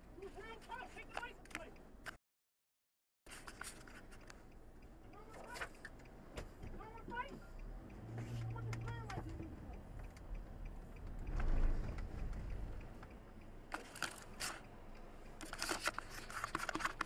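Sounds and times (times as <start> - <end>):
sharp clicks and knocks in car: 5.2 - 17.0.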